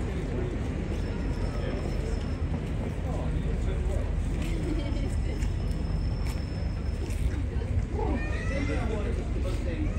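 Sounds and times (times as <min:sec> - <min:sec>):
bystanders' voices: 0:00.0 - 0:09.9.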